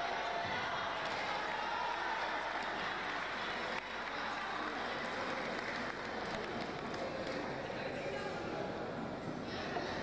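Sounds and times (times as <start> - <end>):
echoing sports hall din: 0.0 - 10.0.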